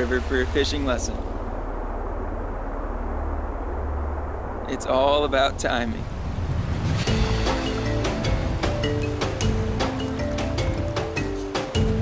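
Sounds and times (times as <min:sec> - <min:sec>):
rushing stream water: 0:04.8 - 0:12.0
background music of held notes: 0:07.1 - 0:12.0.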